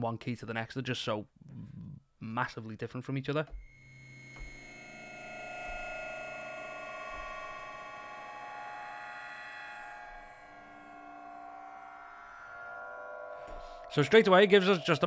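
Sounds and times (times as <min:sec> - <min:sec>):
bell-like synth drone: 0:03.7 - 0:15.0.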